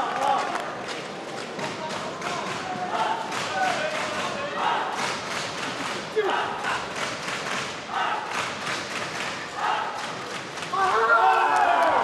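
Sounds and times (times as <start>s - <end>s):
crowd noise: 0.0s - 12.0s
crowd chanting: 2.9s - 5.3s, 6.2s - 12.0s.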